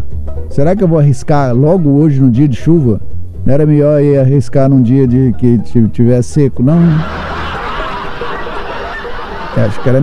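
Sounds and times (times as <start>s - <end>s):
crowd laughing: 6.7s - 10.0s.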